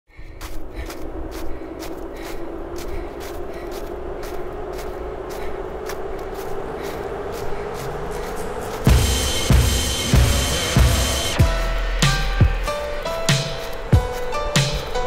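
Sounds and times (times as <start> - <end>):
low rumble: 0.1 - 15.0
rising low hum: 0.1 - 15.0.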